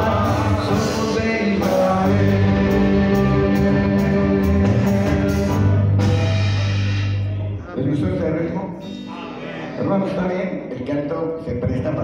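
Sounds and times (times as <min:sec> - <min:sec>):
live band music with drums: 0:00.0 - 0:07.6.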